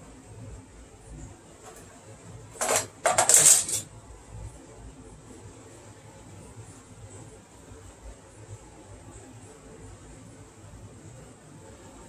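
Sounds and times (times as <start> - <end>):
metal hand tool rattling: 2.6 - 3.8.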